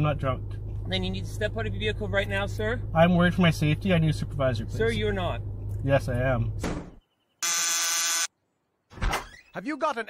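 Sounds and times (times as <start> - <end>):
door buzzer: 7.4 - 8.3.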